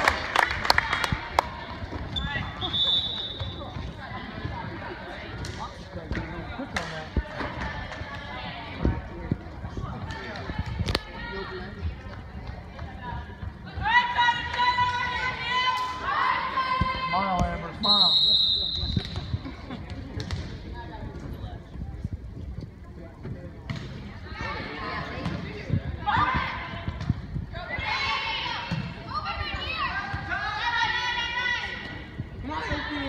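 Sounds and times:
referee's whistle: 2.2 - 3.7, 17.8 - 19.3.

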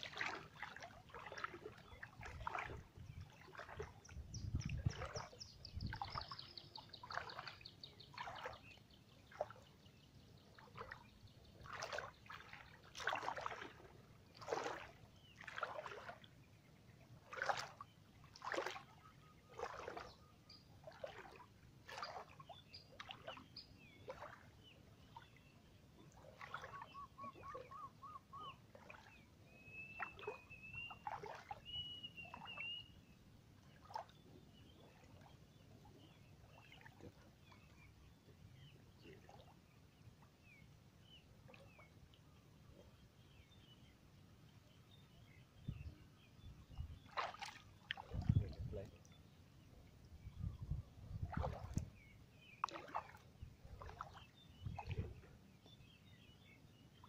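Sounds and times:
splashing steps in water: 0.0 - 4.1, 4.7 - 5.4, 6.0 - 8.7, 10.6 - 11.0, 11.6 - 16.3, 17.2 - 20.2, 20.8 - 23.4, 24.1 - 24.5, 26.1 - 26.9, 30.0 - 31.7, 47.0 - 49.0, 51.2 - 52.0, 52.6 - 55.2
faint bird chirps: 1.1 - 9.6, 25.0 - 39.6, 40.6 - 57.0
birds calling: 26.5 - 28.6.

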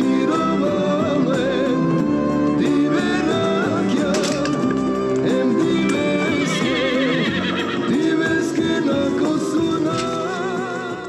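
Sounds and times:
film soundtrack music: 0.0 - 11.0
horse whinnying: 4.1 - 8.6.

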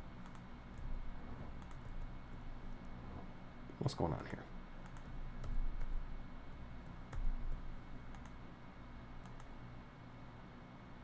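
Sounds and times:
mouse and keyboard clicks: 0.2 - 0.9, 1.6 - 2.0, 4.8 - 5.9, 8.1 - 8.4, 9.2 - 9.5.

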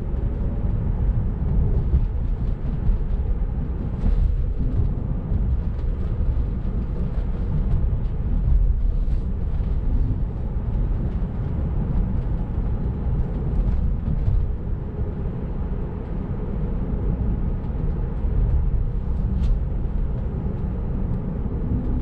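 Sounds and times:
road and tyre rumble in car: 0.0 - 22.0.

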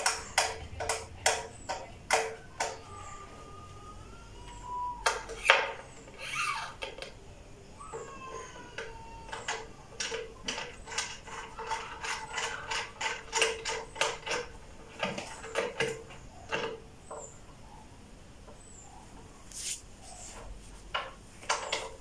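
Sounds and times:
wooden screw clicking and creaking: 0.0 - 3.4, 4.4 - 7.2, 7.9 - 17.5, 20.9 - 22.0.

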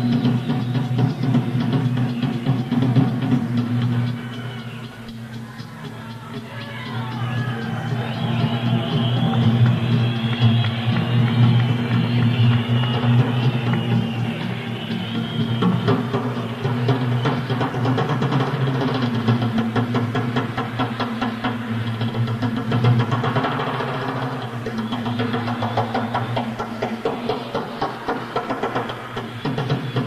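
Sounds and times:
fast drum kit solo: 0.0 - 30.0.

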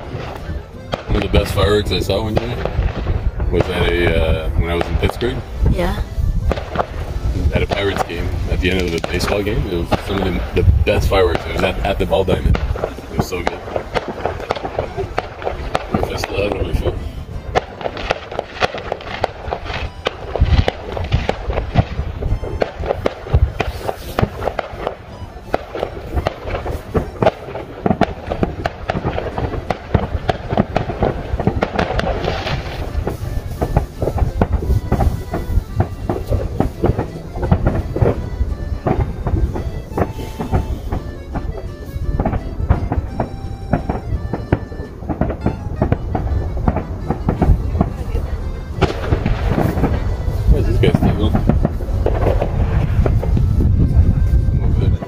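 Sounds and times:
fireworks bangs and crackles: 0.0 - 55.0.

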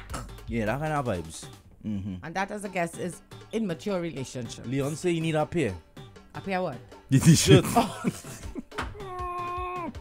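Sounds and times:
laughter: 7.4 - 8.7
high-pitched vocal cry: 9.0 - 10.0.

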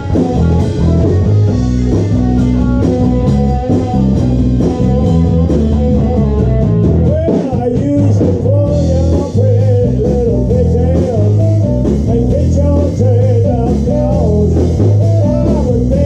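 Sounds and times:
blues band playing live: 0.0 - 16.0
electric bass line: 0.0 - 16.0
lead guitar line: 0.0 - 16.0.

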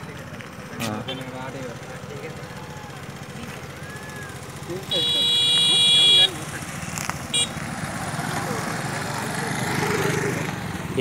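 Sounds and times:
vehicle horn honking: 1.0 - 1.5, 4.8 - 6.6, 7.3 - 7.6.

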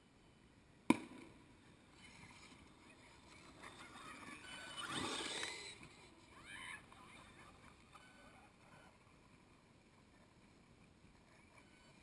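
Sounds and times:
squeaky pitch slides: 4.2 - 5.9.

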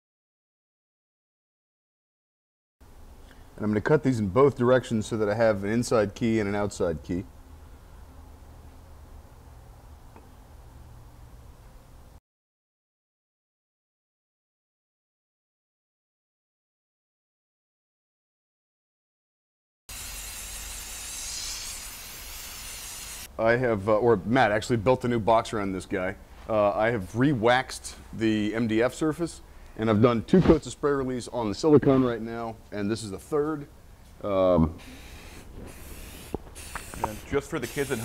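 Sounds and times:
aerosol spray hissing: 19.9 - 23.3, 34.8 - 38.0.

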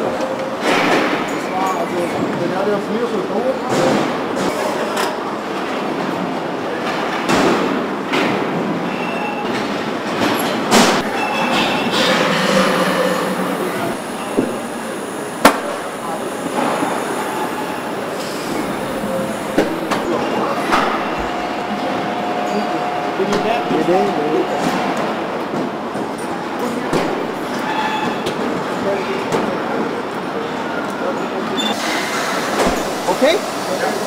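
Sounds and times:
machinery hum and hiss: 0.0 - 34.0.

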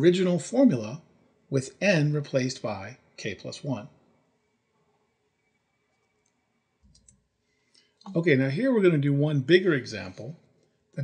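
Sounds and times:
faint clicks: 5.9 - 8.2.

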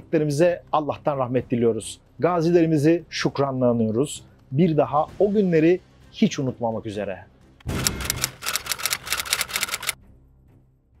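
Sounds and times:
typewriter keystroke clicks: 7.7 - 10.0.

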